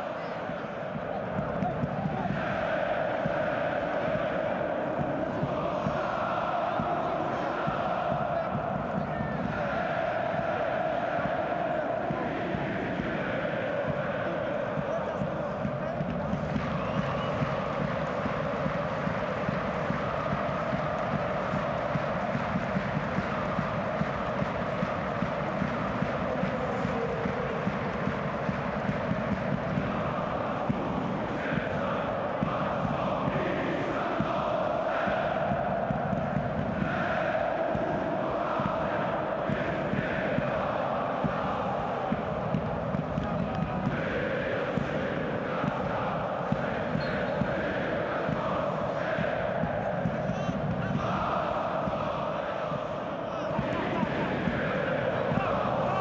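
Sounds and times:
stadium crowd chanting and singing: 0:00.0 - 0:56.0.

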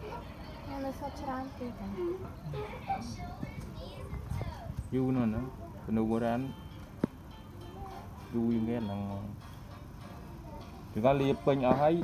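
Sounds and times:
background speech: 0:00.0 - 0:06.6, 0:07.4 - 0:09.4.

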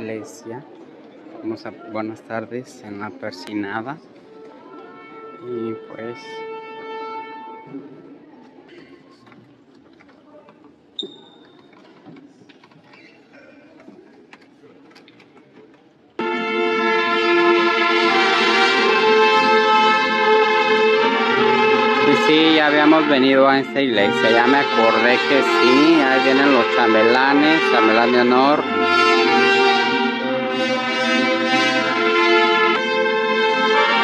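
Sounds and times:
brass music with trumpets: 0:04.3 - 0:08.0, 0:16.2 - 0:34.0
church murmur: 0:16.2 - 0:34.0.

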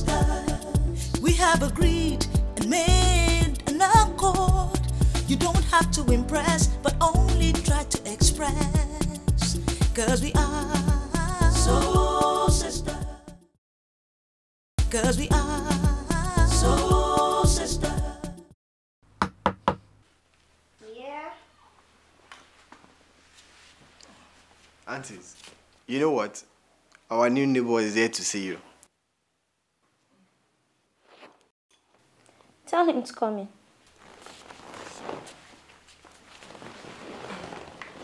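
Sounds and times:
knocks on a door: 0:19.2 - 0:19.8
footsteps on hard floor: 0:22.2 - 0:24.8, 0:33.9 - 0:38.0.

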